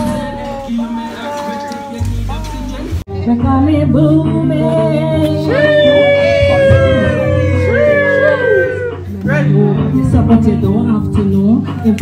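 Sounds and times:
steady low musical backing: 0.0 - 12.0.

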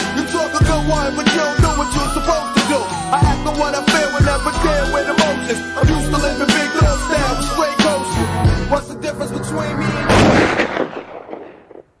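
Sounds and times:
loud blast: 9.0 - 12.0.

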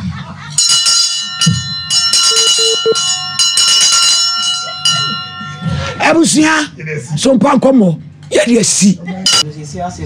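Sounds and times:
bell-like ringing tone: 0.6 - 6.3.

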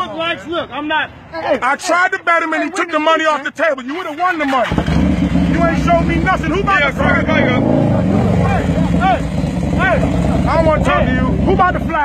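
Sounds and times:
voices calling out: 0.0 - 12.0
motorcycle engine idling: 4.6 - 12.0.

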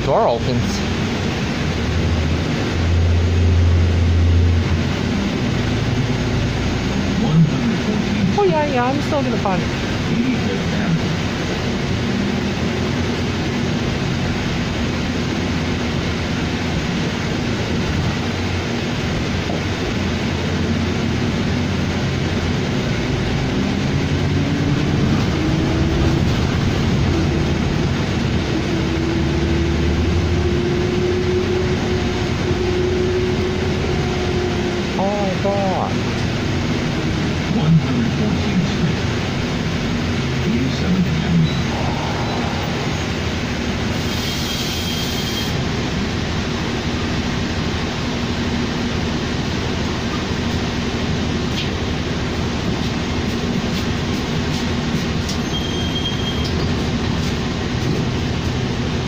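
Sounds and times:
bus engine running: 0.0 - 59.0
road noise: 0.0 - 59.0.

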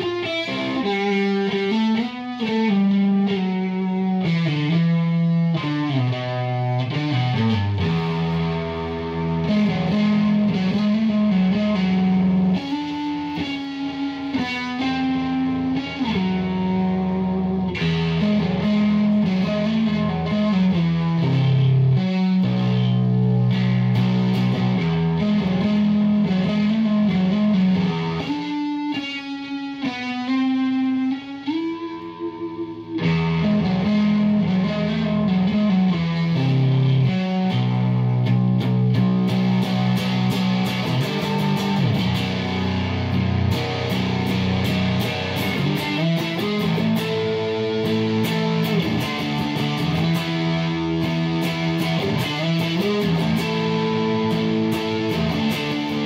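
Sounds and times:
distorted electric guitar riff: 0.0 - 56.0.

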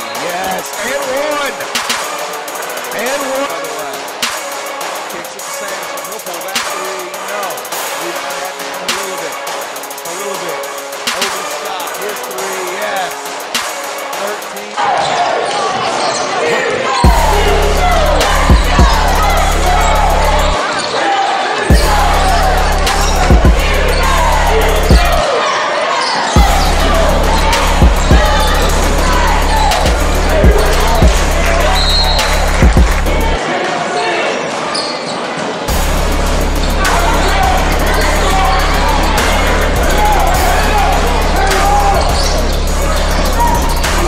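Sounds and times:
crowd chatter: 0.0 - 44.0
voices around the court: 0.0 - 44.0
sneakers squeaking on hardwood: 14.8 - 17.1, 34.6 - 35.5, 42.0 - 42.5.

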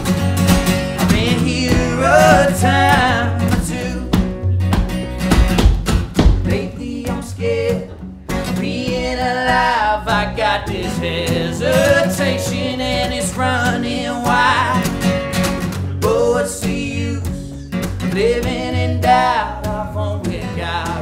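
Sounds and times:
electric guitar: 0.0 - 21.0
strummed acoustic guitar: 0.0 - 21.0
person singing: 1.0 - 4.3, 6.5 - 15.0.

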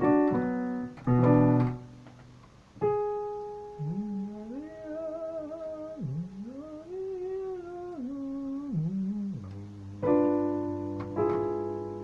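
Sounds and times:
person humming a melody: 3.6 - 11.7
piano note ringing: 9.3 - 12.0.

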